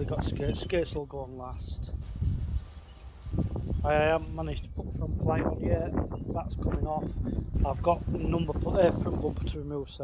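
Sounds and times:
man talking: 0:00.0 - 0:02.0, 0:03.8 - 0:10.0
high bird chirp: 0:00.0 - 0:06.8, 0:07.4 - 0:09.8.

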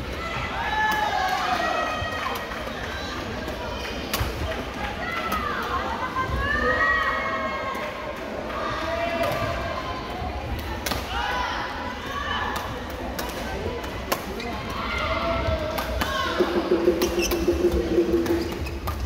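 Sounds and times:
overlapping voices: 0:15.7 - 0:19.0.

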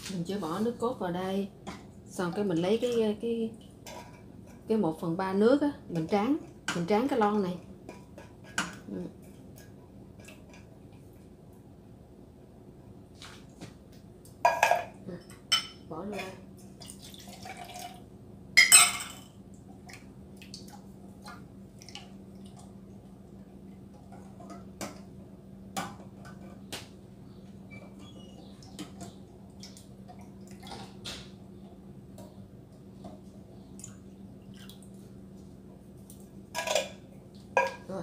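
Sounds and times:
dripping water: 0:16.8 - 0:18.0, 0:33.8 - 0:35.0.

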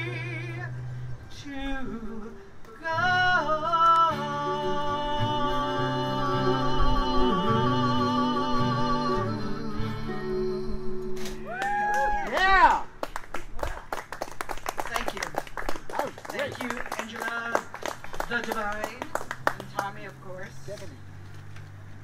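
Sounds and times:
people singing with vibrato: 0:00.0 - 0:11.3
acoustic guitar: 0:00.0 - 0:11.8
audience applauding: 0:11.5 - 0:20.0.

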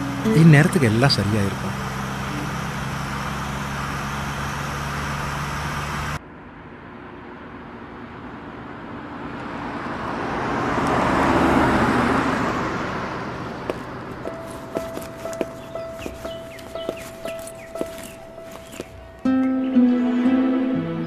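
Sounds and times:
car cabin engine and road noise: 0:00.0 - 0:19.3
car passing by: 0:08.5 - 0:18.9.

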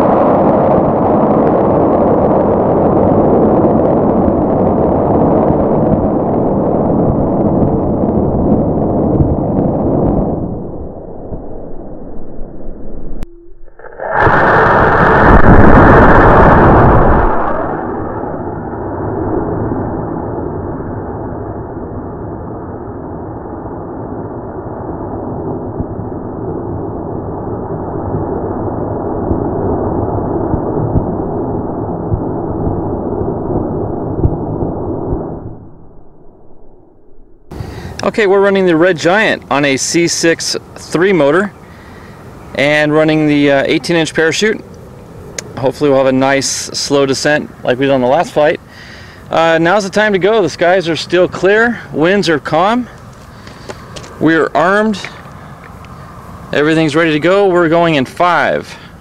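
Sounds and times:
steady rushing noise: 0:00.0 - 0:59.0
rocket motor burning: 0:13.8 - 0:21.7.

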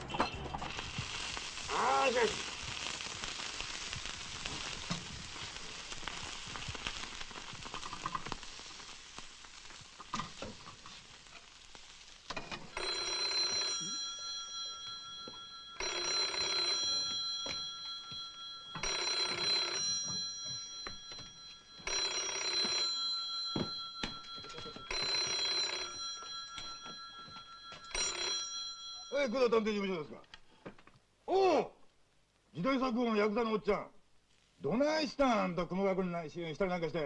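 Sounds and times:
telephone bell ringing: 0:12.5 - 0:29.6.

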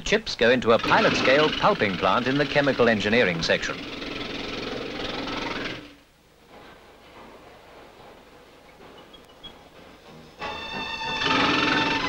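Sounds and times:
mechanical rattling: 0:00.7 - 0:06.0.

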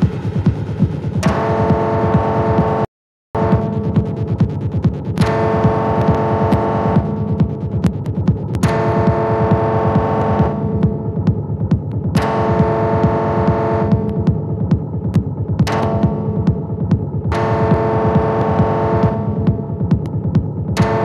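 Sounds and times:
buzzy synth note: 0:00.0 - 0:21.0
rumbling fast kick pattern: 0:00.0 - 0:21.0.

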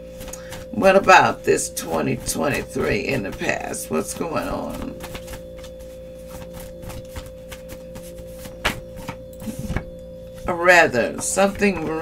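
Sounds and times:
steady hum: 0:00.0 - 0:12.0
cards shuffled by hand: 0:04.0 - 0:10.5.

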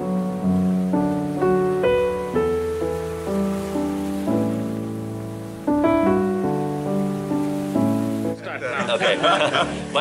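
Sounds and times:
slow piano music: 0:00.0 - 0:10.0.

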